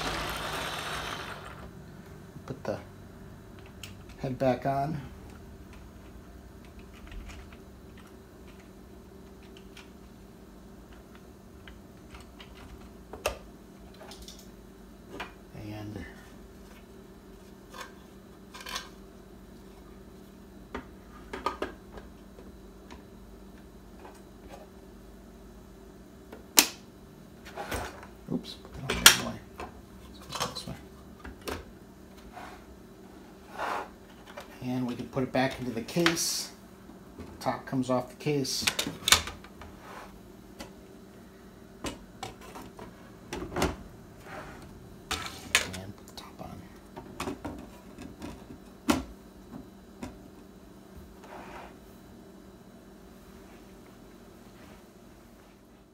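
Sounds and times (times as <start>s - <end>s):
faint steady hum: 0.0s - 55.9s.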